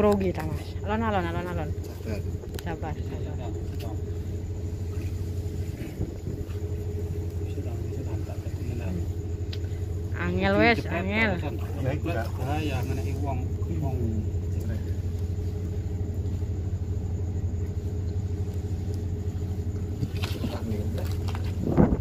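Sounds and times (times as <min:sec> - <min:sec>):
motor humming: 0:00.0 - 0:22.0
indistinct voices: 0:07.4 - 0:15.0.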